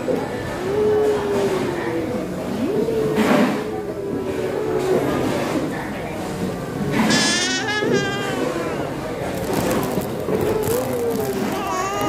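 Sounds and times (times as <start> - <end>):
hubbub of indistinct voices: 0.0 - 12.0.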